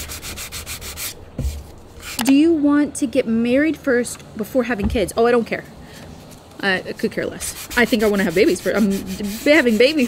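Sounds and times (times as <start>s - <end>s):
sanding block on wood: 0.0s - 2.2s, 7.3s - 10.0s
dull knock: 4.8s - 5.1s.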